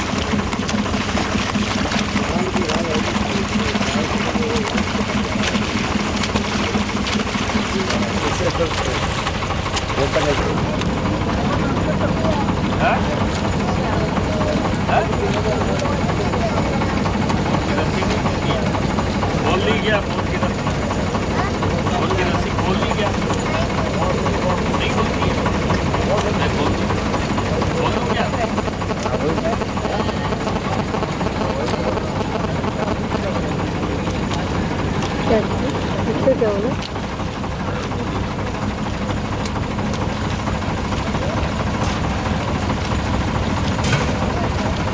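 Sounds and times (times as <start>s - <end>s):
boat motor running: 0.0s - 44.9s
indistinct voices: 0.0s - 44.9s.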